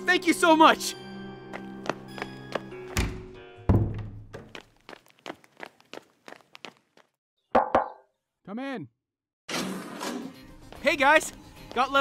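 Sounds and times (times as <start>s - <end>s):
background music: 0.0s - 4.1s, 9.9s - 12.0s
footsteps: 4.0s - 7.1s.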